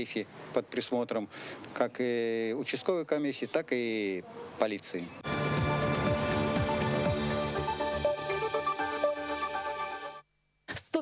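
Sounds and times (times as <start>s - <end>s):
electronic theme music: 5.2s - 10.2s.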